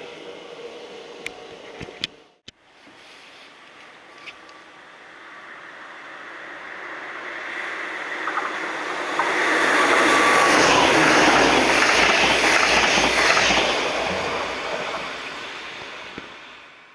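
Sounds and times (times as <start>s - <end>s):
train passing at speed: 0.0s - 1.8s, 4.0s - 16.9s
train wheels knocking: 8.2s - 16.4s.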